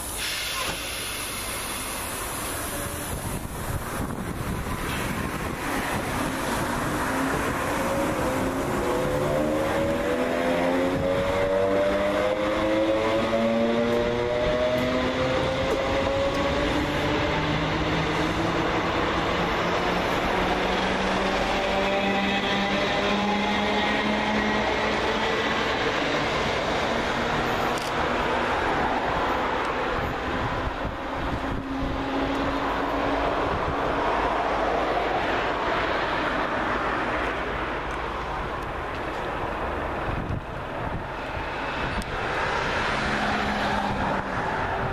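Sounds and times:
train traction motors whining: 0.0s - 28.6s
train carriages rolling past: 0.0s - 44.9s.

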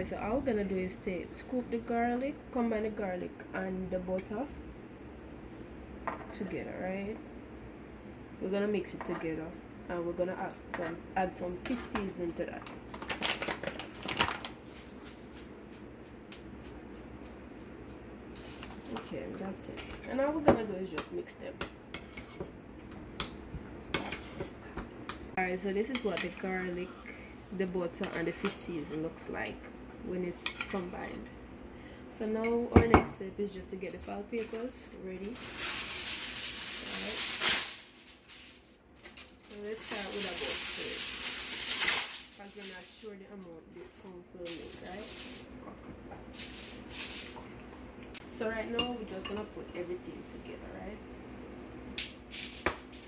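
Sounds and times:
aluminium foil crinkling: 12.5s - 17.3s, 34.3s - 45.6s, 46.3s - 47.4s.

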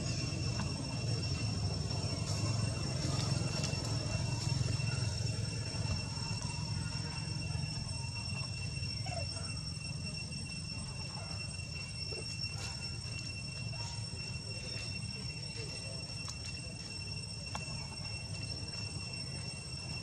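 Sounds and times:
constant low rumble: 0.0s - 20.0s
high-pitched whine: 0.0s - 20.0s.

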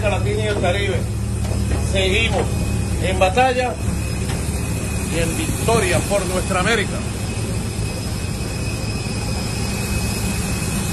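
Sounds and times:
high jet whine: 0.0s - 10.9s
jet aircraft engine rumble: 0.0s - 10.9s.

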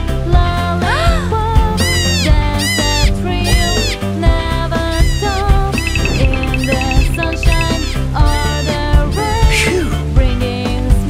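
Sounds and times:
cartoon music with steady beat: 1.6s - 9.7s
fast high ticks: 5.1s - 8.0s.

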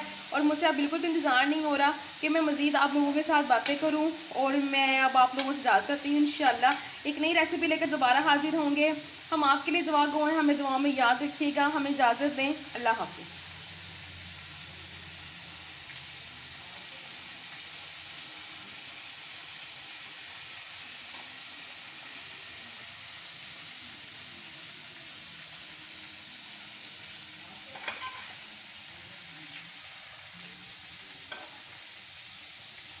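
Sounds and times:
oil sizzling in a frying pan: 0.0s - 33.0s.

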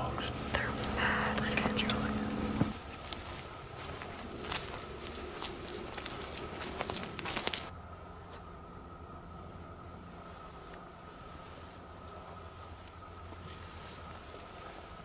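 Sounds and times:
hushed whispering: 0.0s - 2.6s
steady low hum: 0.0s - 15.0s
soft rustling: 10.3s - 15.0s.

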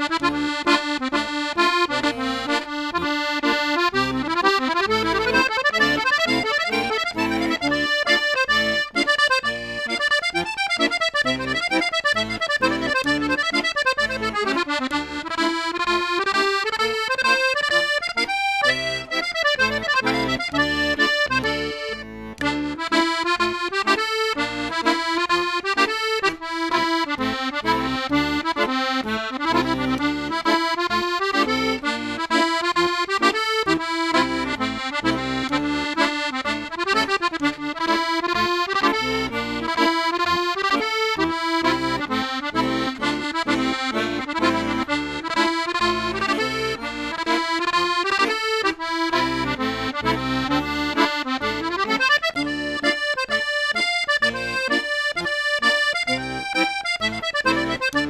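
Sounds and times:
accordion dance tune: 0.0s - 58.0s.

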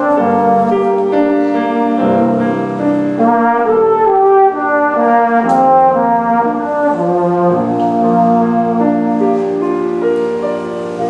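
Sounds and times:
grand piano: 0.0s - 11.0s
tenor horn melody: 0.0s - 11.0s.

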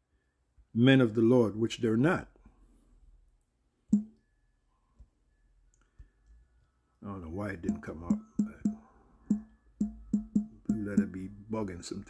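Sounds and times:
finger tapping touchscreen: 3.9s - 4.2s, 7.6s - 11.3s
person speaking: 7.0s - 8.9s, 10.6s - 12.0s.

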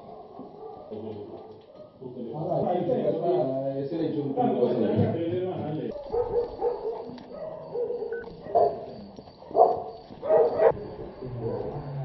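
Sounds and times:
dog barking: 0.0s - 2.0s, 5.9s - 11.9s.

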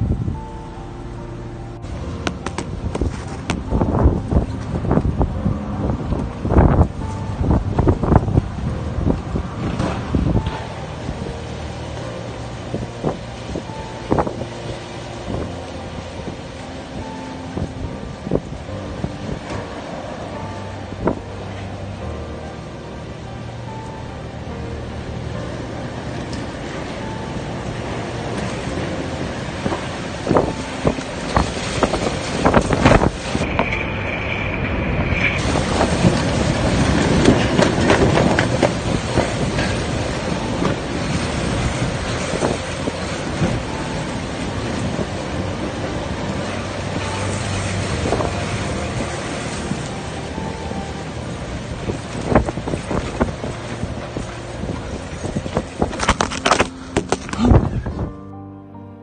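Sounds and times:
wind buffeting microphone: 0.0s - 58.2s
music playing: 0.0s - 59.0s.

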